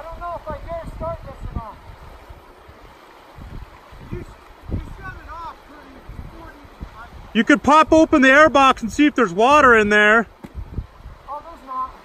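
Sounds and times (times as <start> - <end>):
river water flowing over rocks: 0.0 - 12.0
man's voice: 7.3 - 10.3.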